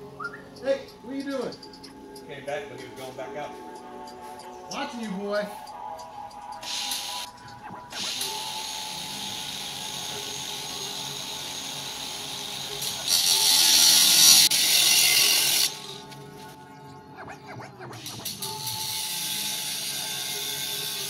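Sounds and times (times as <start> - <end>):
handheld power tool running: 8.0 - 16.0, 18.0 - 21.0
harsh grinding on metal: 8.0 - 16.0.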